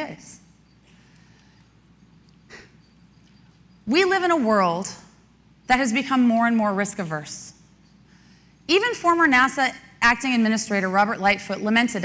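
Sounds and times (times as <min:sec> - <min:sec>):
woman talking: 0:00.0 - 0:00.4, 0:03.9 - 0:05.1, 0:05.7 - 0:07.6, 0:08.7 - 0:12.0
soft breath: 0:08.0 - 0:08.7.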